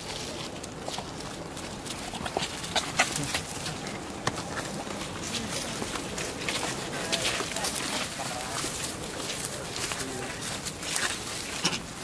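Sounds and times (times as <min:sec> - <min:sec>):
footsteps crunching on dry leaves: 0:00.0 - 0:12.0.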